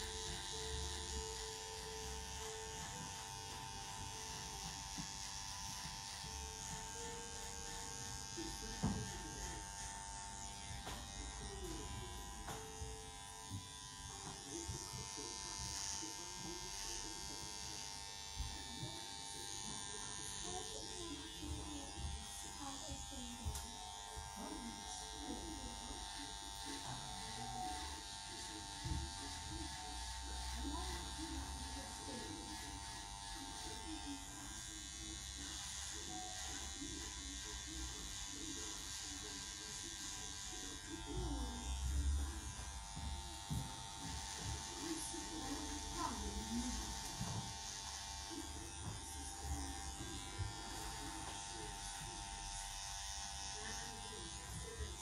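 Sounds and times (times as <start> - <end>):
electric hair clippers buzzing: 0.0 - 55.0.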